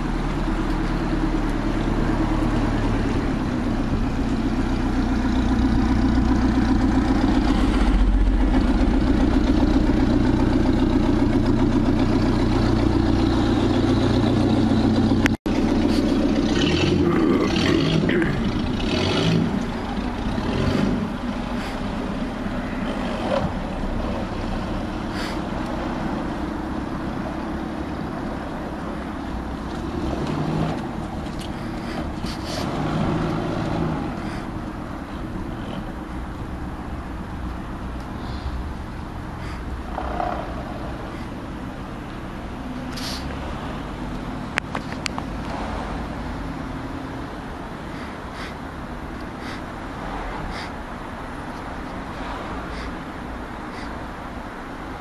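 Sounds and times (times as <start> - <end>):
boat engine low drone: 0.0 - 44.6.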